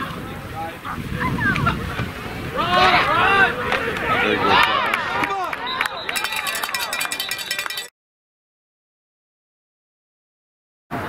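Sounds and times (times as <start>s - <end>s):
voices shouting: 2.3s - 7.9s
referee's whistle trill: 5.6s - 7.9s.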